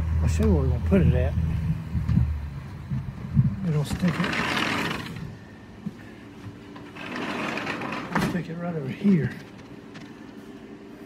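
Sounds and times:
sliding door rolling on track: 0:03.7 - 0:05.3, 0:06.8 - 0:08.5.

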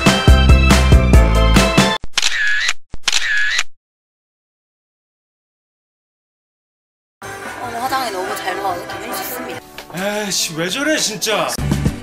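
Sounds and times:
background music: 0:00.0 - 0:02.0, 0:07.2 - 0:12.0
camera shutter sound effects: 0:02.1 - 0:03.8.

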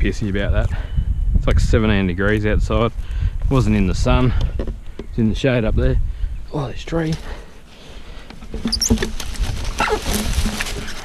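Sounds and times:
branches and logs being shifted: 0:06.9 - 0:11.0
rustling of wood and leaves: 0:06.9 - 0:11.0.

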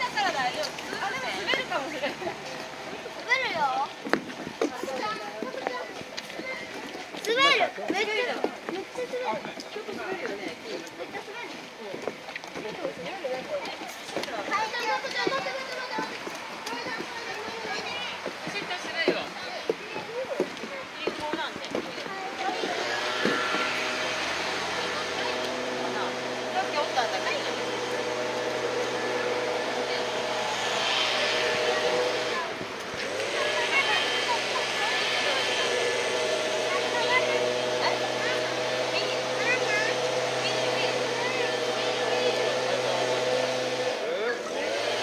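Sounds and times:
voices of visitors and children: 0:00.0 - 0:45.0
steady machine hum: 0:22.6 - 0:45.0.

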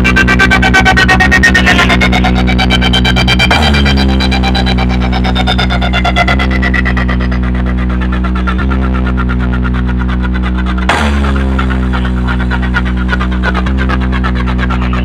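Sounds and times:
deep bass drone: 0:00.0 - 0:15.0
electronic music over loudspeakers: 0:00.0 - 0:15.0
sharp hit: 0:10.9 - 0:12.0.

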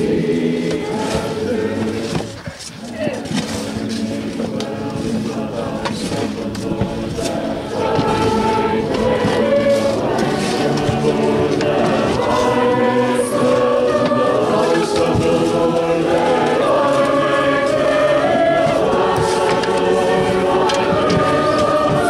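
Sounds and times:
people singing a slow hymn: 0:00.0 - 0:22.0.

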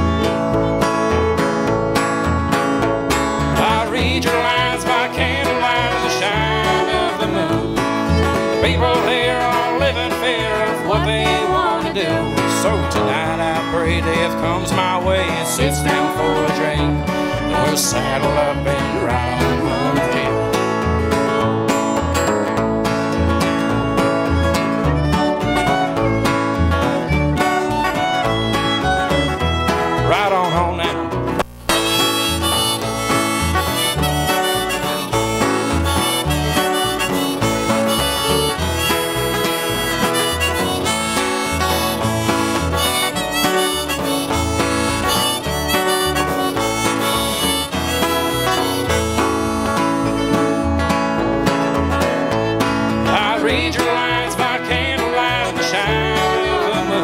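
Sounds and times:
bowed fiddle melody: 0:00.0 - 0:57.0
plucked upright bass: 0:00.0 - 0:57.0
strummed acoustic guitar: 0:00.0 - 0:57.0.

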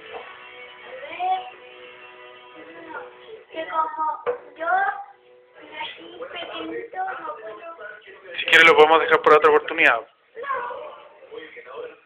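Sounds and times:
child singing: 0:00.8 - 0:01.6, 0:02.5 - 0:07.8.

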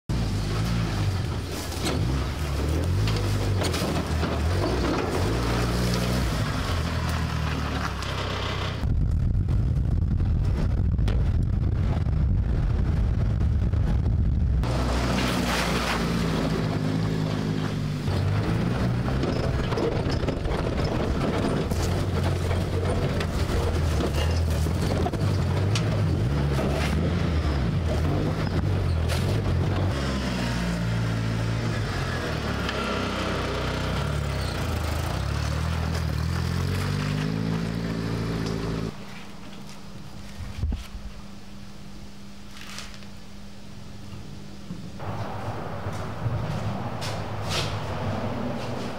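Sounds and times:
buggy engine revving: 0:00.1 - 0:09.2, 0:11.7 - 0:39.0.

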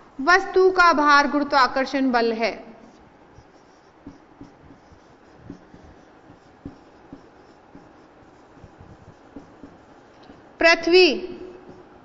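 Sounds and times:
marker scratching on whiteboard: 0:02.8 - 0:12.0
marker tapping on whiteboard: 0:03.0 - 0:10.5, 0:11.6 - 0:12.0.

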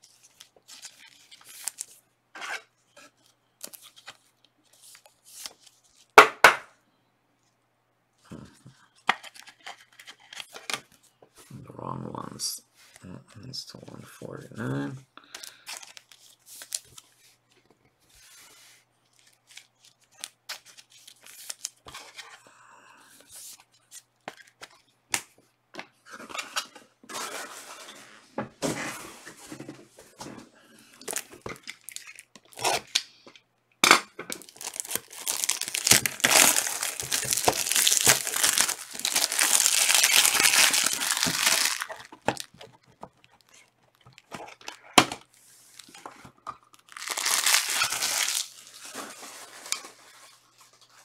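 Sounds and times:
cards and packaging rustling: 0:00.1 - 0:02.0, 0:03.1 - 0:06.2, 0:09.0 - 0:11.2, 0:14.6 - 0:22.4, 0:28.9 - 0:33.4, 0:34.3 - 0:51.0
plastic wrap crinkling and tearing: 0:00.3 - 0:02.0, 0:19.2 - 0:21.9, 0:31.0 - 0:33.0, 0:34.3 - 0:45.0, 0:45.7 - 0:51.0.

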